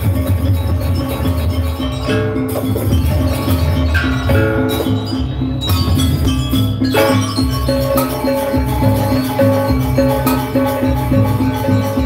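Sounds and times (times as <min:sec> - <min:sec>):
gamelan ensemble playing dance music: 0:00.0 - 0:12.0.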